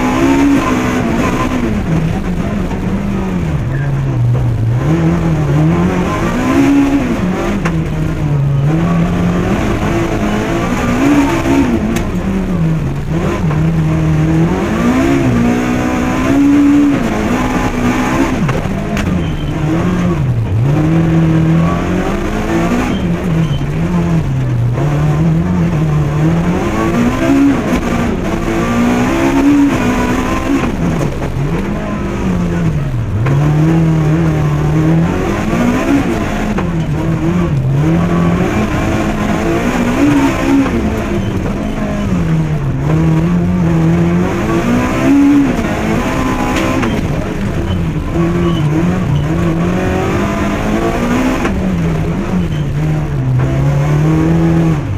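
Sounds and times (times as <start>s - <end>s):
rally car engine revving: 0.0s - 54.9s.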